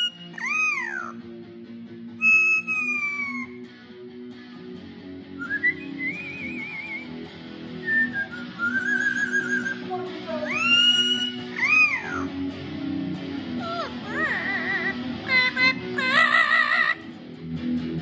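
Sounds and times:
parrot whistling: 0.0 - 1.2, 2.2 - 3.6, 5.4 - 7.2, 7.8 - 9.9, 10.5 - 12.3, 13.6 - 17.0
electric guitar chords: 0.0 - 18.0.

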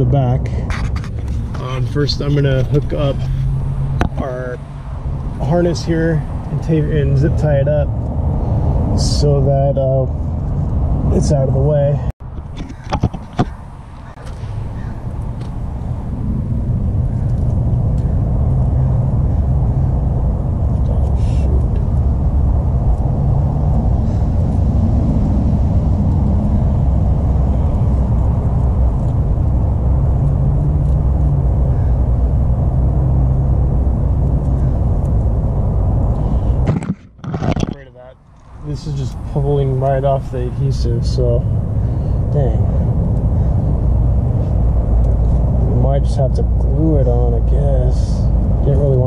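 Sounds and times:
vehicle engine running: 0.0 - 12.4, 13.4 - 49.0.

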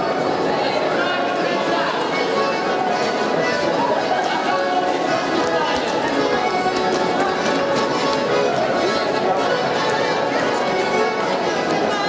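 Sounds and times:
crowd voices: 0.0 - 12.0
dancers' feet stepping: 5.3 - 9.0.

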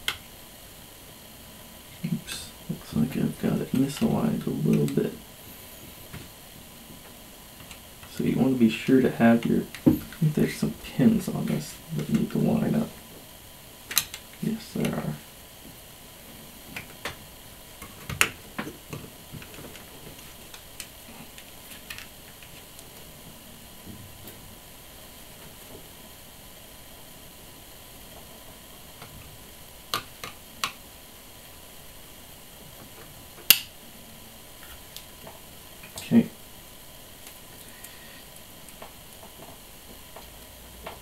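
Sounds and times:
faint hiss: 0.0 - 41.0.

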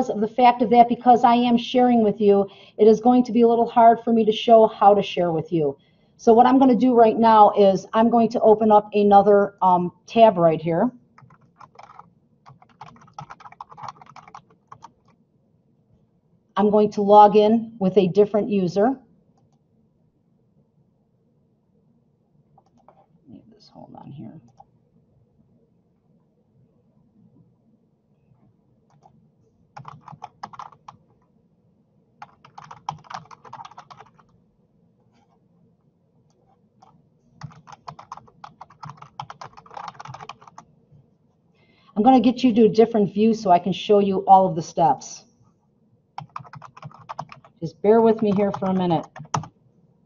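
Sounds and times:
computer keyboard typing: 11.2 - 15.2, 22.6 - 23.1, 24.4 - 24.7, 28.9 - 31.3, 32.2 - 34.4, 36.3 - 40.7, 46.2 - 49.6.

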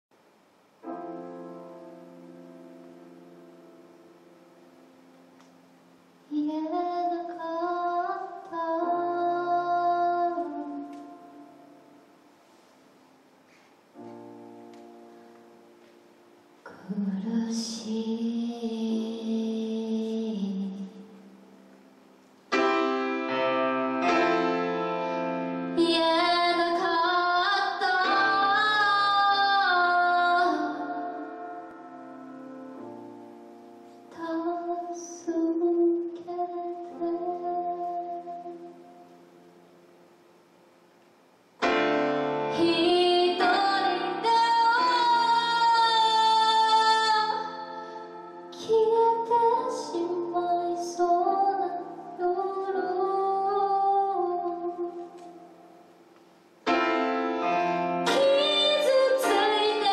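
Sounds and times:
grand piano: 0.2 - 59.9
woman singing a ballad: 6.3 - 11.8, 16.7 - 21.3, 25.7 - 31.7, 34.1 - 39.0, 42.5 - 55.5, 58.0 - 59.9.

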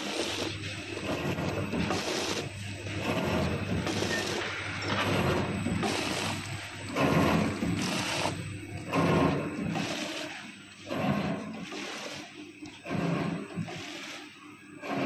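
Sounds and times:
packing machine running: 0.0 - 15.0.

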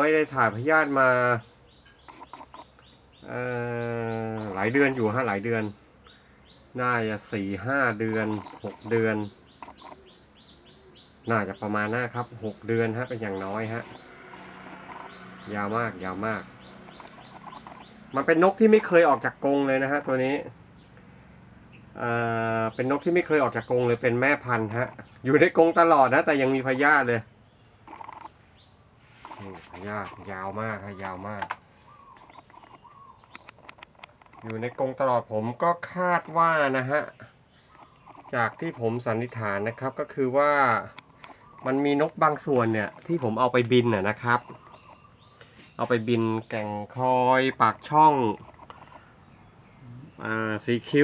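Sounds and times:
short bird calls: 1.3 - 19.1, 27.6 - 51.0
man speaking: 6.8 - 9.3, 11.3 - 14.0, 29.2 - 31.6, 49.9 - 51.0.

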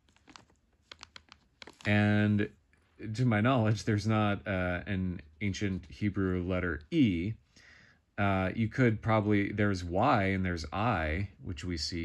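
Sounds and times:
person speaking: 0.0 - 7.4, 8.2 - 12.0.

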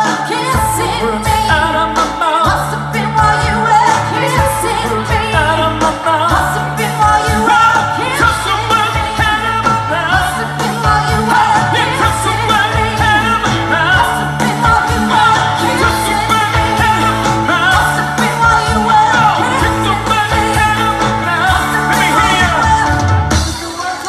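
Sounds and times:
electric guitars: 0.0 - 24.0
keyboards: 0.0 - 24.0
man singing: 0.0 - 24.0
steady drum beat: 0.0 - 24.0
woman singing: 0.0 - 24.0.

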